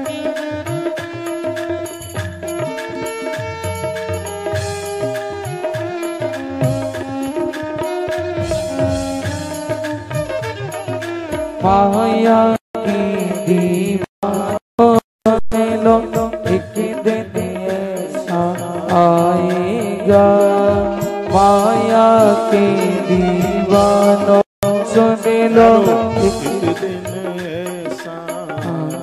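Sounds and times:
devotional song with instruments: 0.0s - 29.0s
drum strokes: 0.0s - 29.0s.

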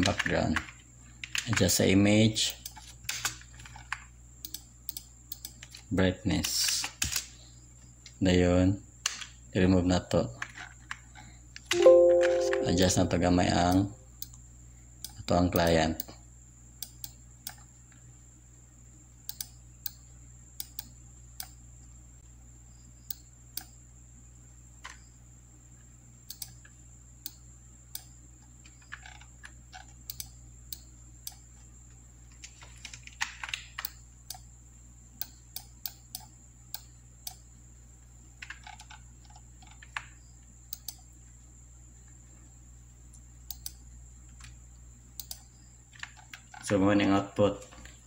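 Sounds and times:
faint steady hum: 0.0s - 48.0s
computer mouse clicks: 2.4s - 7.3s, 16.8s - 18.0s, 19.3s - 20.0s, 20.6s - 21.6s, 26.3s - 31.4s, 35.2s - 37.4s, 38.4s - 41.1s, 43.5s - 44.6s, 45.2s - 46.8s
thin high whine: 11.7s - 13.4s.

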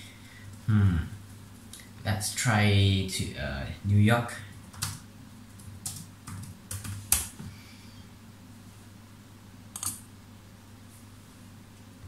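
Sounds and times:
typing on computer keyboard: 4.7s - 7.3s, 9.7s - 10.0s.

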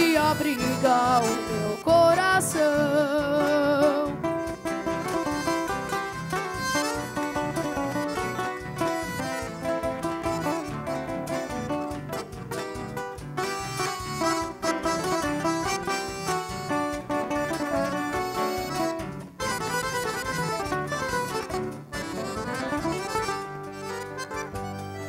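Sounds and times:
acoustic guitar picking a melody: 0.0s - 25.0s
band accompaniment: 0.0s - 25.0s.

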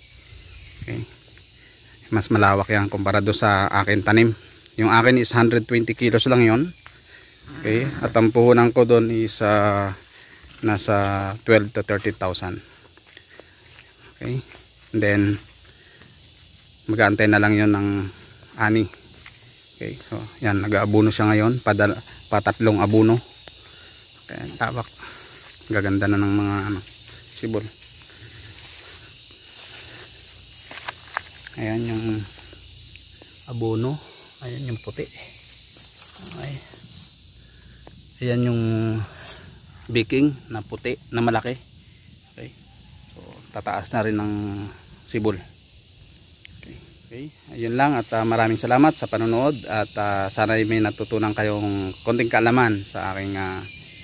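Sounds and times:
faint outdoor background: 0.0s - 54.0s
insects droning: 0.0s - 54.0s
man speaking: 2.1s - 6.7s, 7.5s - 10.0s, 10.6s - 12.7s, 14.1s - 15.5s, 16.9s - 19.0s, 19.8s - 23.3s, 24.2s - 27.8s, 31.6s - 32.4s, 33.5s - 35.3s, 38.2s - 39.1s.

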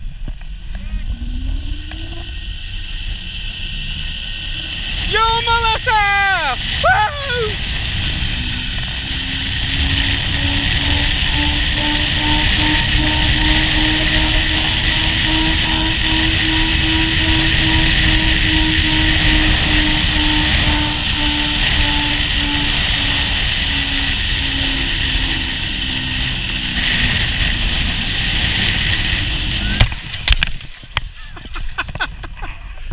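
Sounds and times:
wind rush on microphone: 0.0s - 32.9s
zip-line pulleys whining: 0.4s - 32.0s.

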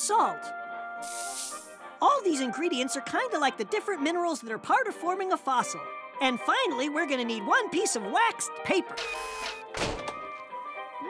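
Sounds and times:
background music: 0.0s - 11.0s
robot arm hissing whir: 1.0s - 1.8s.

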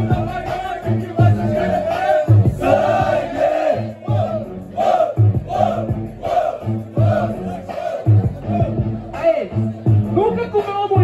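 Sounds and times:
crowd shouting and cheering: 0.0s - 11.0s
hip-hop beat over sound system: 0.0s - 11.0s.

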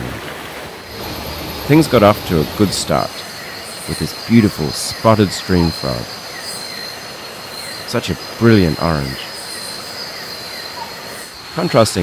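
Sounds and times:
high-pitched insect drone: 0.9s - 7.8s.

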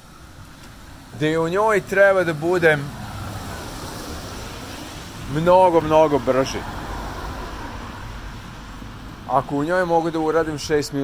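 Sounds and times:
street noise rumble: 0.0s - 11.0s.

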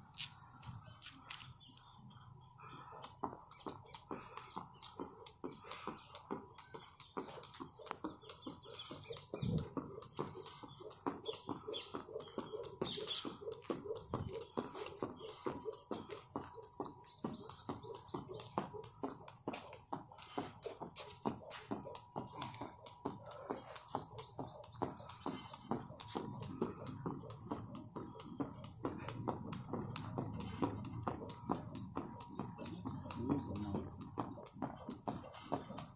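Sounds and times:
jump rope slapping ground: 2.7s - 35.9s.

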